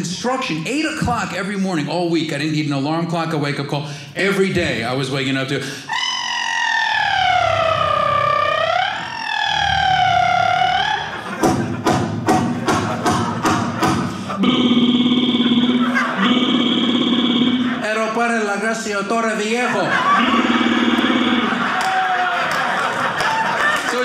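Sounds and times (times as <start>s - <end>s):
man imitating construction noise: 10.9s - 18.2s, 19.9s - 22.2s.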